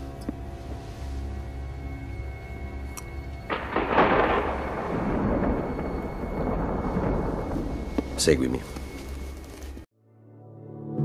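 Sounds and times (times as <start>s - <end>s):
thunder rumbling: 0.6s - 9.9s.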